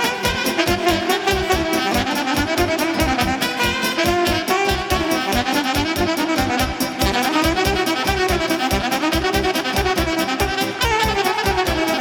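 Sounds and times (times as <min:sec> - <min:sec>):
live band playing folk dance tune: 0:00.0 - 0:12.0
saxophone melody: 0:00.0 - 0:12.0.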